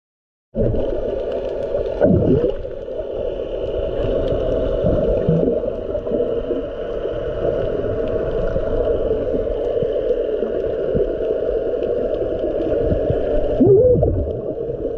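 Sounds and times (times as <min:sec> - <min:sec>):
underwater water moving: 0:00.6 - 0:14.9.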